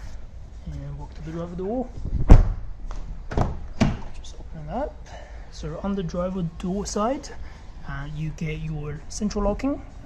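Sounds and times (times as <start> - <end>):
car door shutting: 3.3 - 4.1.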